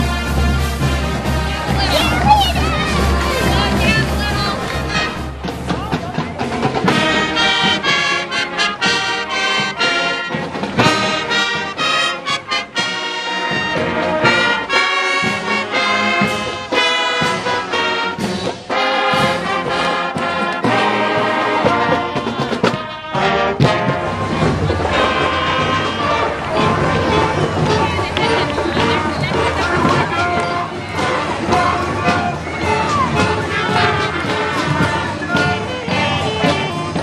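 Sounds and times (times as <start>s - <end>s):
marching band brass: 0.0s - 37.0s.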